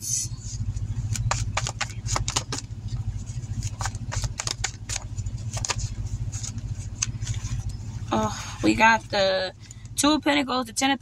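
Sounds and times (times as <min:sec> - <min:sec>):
car engine idling: 0:00.0 - 0:11.0
cards being shuffled: 0:00.5 - 0:07.7.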